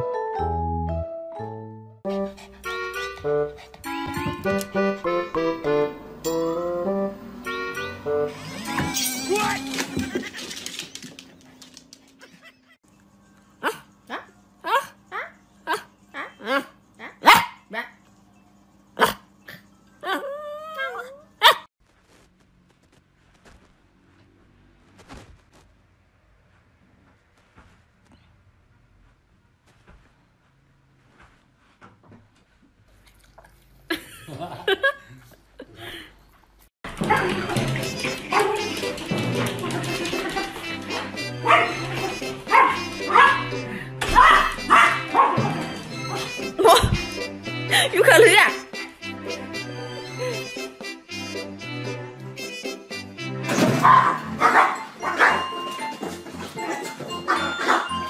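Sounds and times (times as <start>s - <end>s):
background music: 0.0s - 9.8s, 36.9s - 58.0s
small dog barking: 16.5s - 17.6s, 19.0s - 19.2s, 21.4s - 21.7s, 41.4s - 45.5s, 53.8s - 55.4s, 57.3s - 58.0s
small dog yapping: 20.0s - 21.7s, 44.1s - 45.4s.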